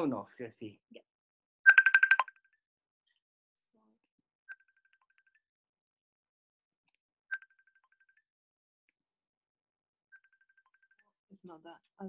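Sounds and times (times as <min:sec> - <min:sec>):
phone ringing with electronic beeps: 0:01.7 - 0:02.3.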